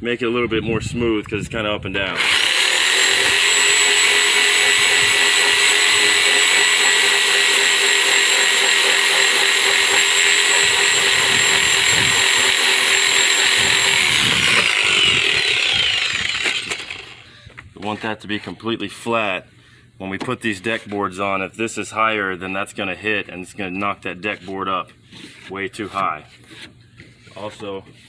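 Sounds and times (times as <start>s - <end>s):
reciprocating saw cutting wood: 2.1s - 17.3s.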